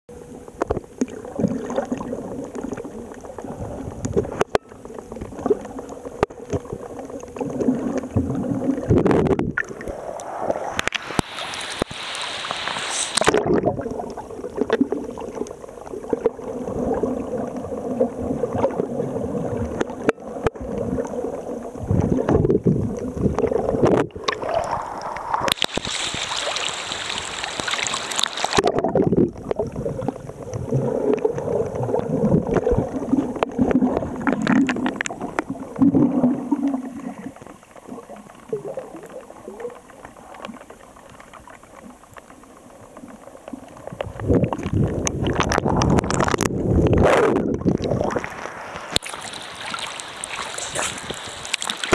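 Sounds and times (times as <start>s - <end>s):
faint steady hum: 0.1s - 51.9s
muffled underwater water noise: 0.1s - 51.9s
hissing rushes: 24.6s - 28.6s.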